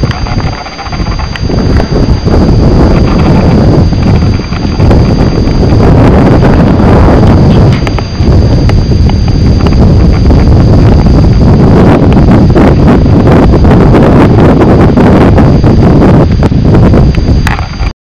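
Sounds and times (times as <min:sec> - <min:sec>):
faint high-pitched whine: 0:00.0 - 0:17.9
wind buffeting microphone: 0:00.0 - 0:17.9.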